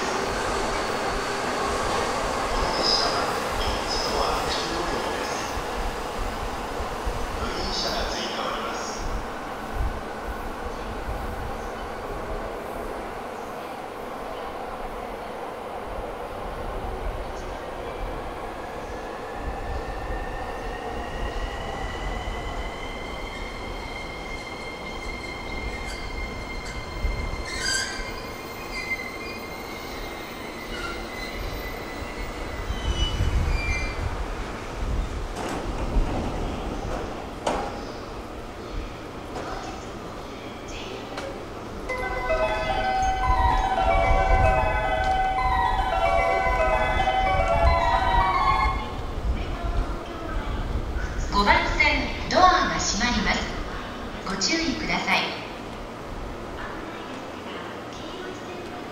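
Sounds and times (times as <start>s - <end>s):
train wheels rumbling on rail: 0.0s - 58.9s.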